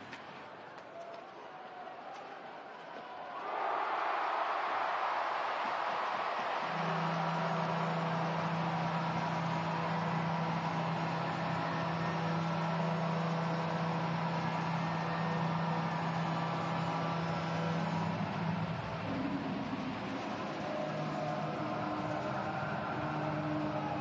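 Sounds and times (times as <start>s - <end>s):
crowd noise: 0.0s - 24.0s
arena goal horn: 5.9s - 19.0s.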